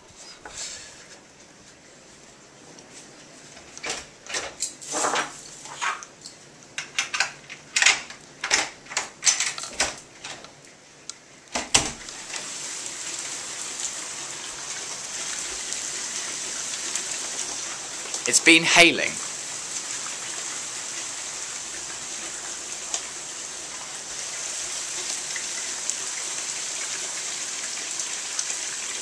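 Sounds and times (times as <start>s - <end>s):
hail falling: 12.1s - 29.0s.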